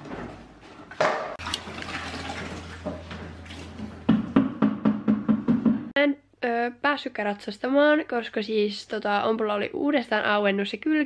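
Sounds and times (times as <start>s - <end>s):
horse drinking: 1.4s - 4.1s
water rushing into drinking bowl: 1.4s - 4.1s.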